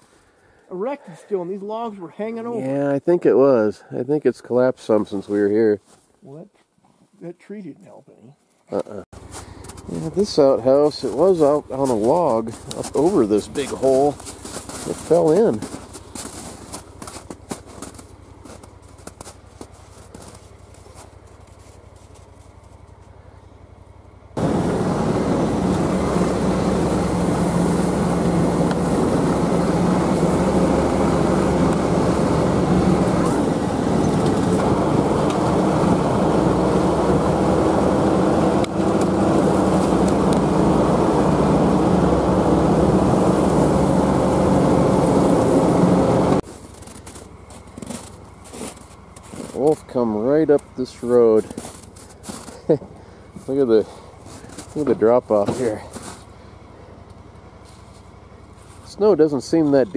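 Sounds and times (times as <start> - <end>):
vehicle engine running: 8.8 - 59.9.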